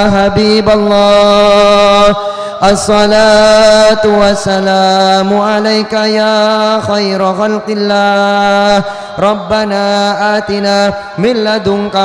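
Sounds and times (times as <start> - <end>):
man chanting prayer into microphone: 0.0 - 12.0.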